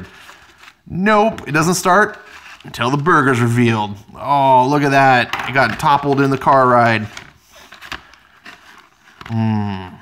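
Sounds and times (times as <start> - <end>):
paper wrapper rustling: 0.0 - 9.5.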